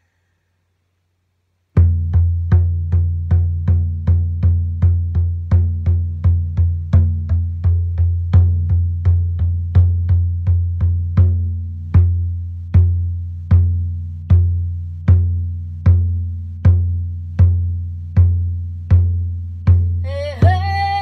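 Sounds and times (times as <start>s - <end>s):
deep frame drum beat: 1.8s - 21.0s.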